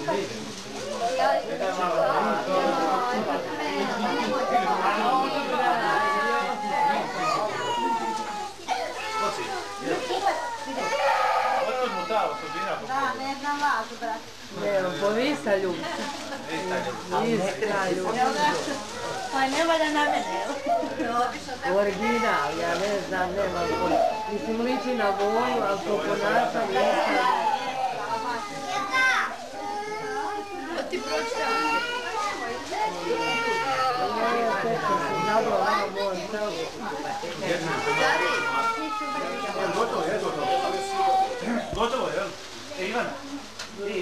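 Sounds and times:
children talking: 0.0s - 44.0s.

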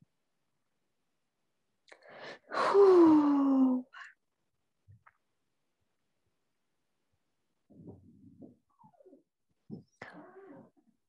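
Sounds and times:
woman breathing in: 1.9s - 3.1s
woman sighing: 2.2s - 4.1s.

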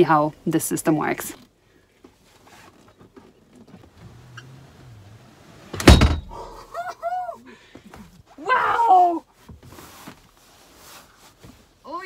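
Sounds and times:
seat rubbing and handling: 2.0s - 6.3s, 9.4s - 11.9s
seat dropping thunk: 5.6s - 6.4s.

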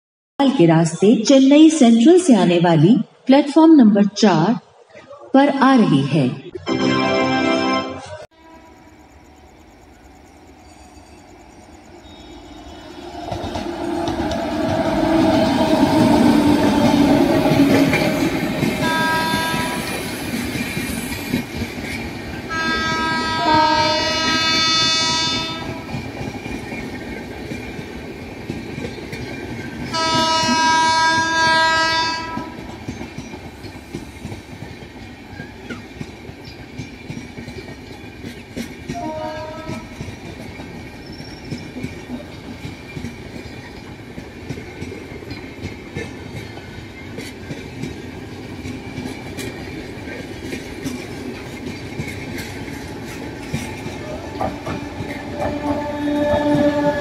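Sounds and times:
train coaches rolling past: 4.3s - 57.0s
locomotive horn: 6.7s - 8.8s, 18.8s - 19.9s, 22.5s - 25.9s, 29.9s - 32.6s, 38.9s - 39.9s, 54.7s - 57.0s
wheels clicking over rail joints: 31.0s - 57.0s.

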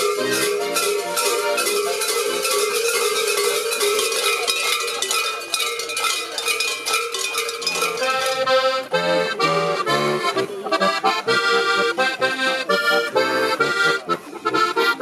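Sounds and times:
accordion playing folk tune: 0.0s - 4.7s, 7.7s - 15.0s
bells jangling and clanging: 0.0s - 9.2s.

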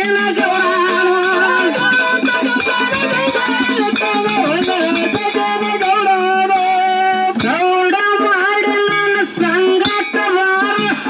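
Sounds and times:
drum: 0.0s - 11.0s
small hand cymbals: 0.1s - 11.0s.

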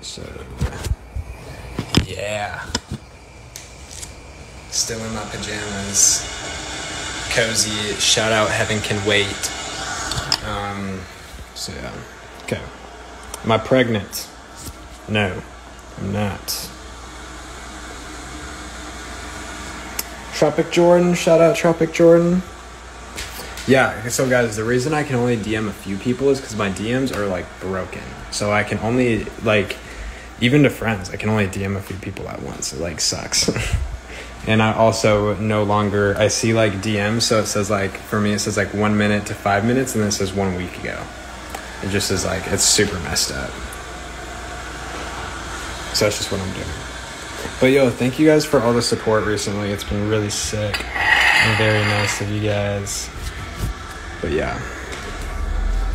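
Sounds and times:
background hum and hiss: 0.0s - 55.9s
faint hiss: 1.6s - 16.8s.

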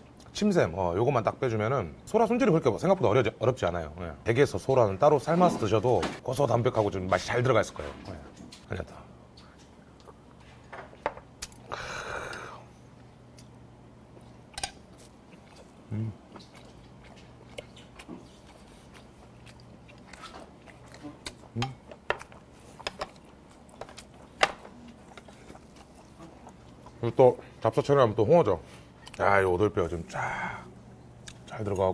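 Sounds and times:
man chewing and eating: 8.4s - 27.7s, 28.6s - 29.4s, 31.0s - 31.9s
breathy exhale: 11.7s - 12.7s
soft mouth sounds: 15.3s - 19.7s.

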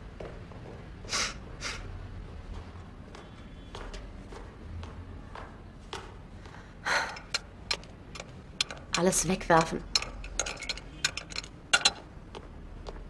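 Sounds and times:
light clicks and knocks: 7.0s - 13.0s.

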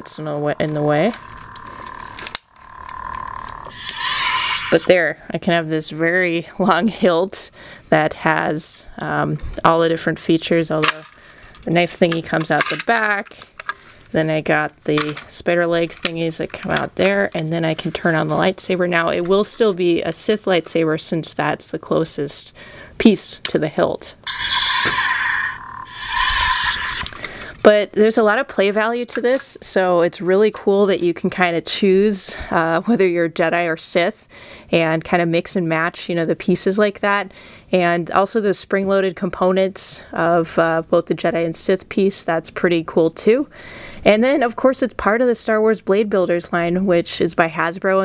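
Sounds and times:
steady high hum: 0.0s - 5.4s, 24.2s - 27.7s.

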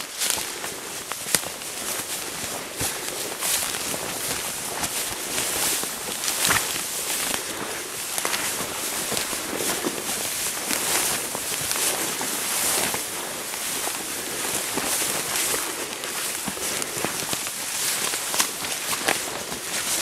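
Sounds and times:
footsteps in dry grass: 0.0s - 20.0s
legs swishing through tall grass: 0.0s - 20.0s.

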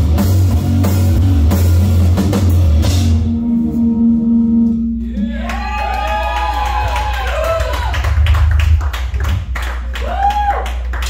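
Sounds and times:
swooping electric guitar tones: 0.0s - 6.0s.

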